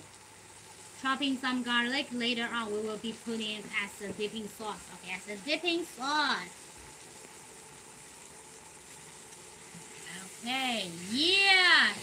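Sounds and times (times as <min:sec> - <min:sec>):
chicken frying in oil: 0:00.0 - 0:12.0.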